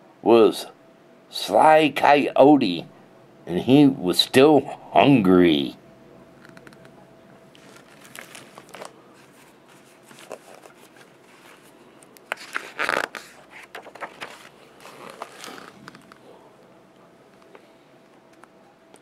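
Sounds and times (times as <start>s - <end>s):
book pages rustling and turning: 7.5s - 16.2s.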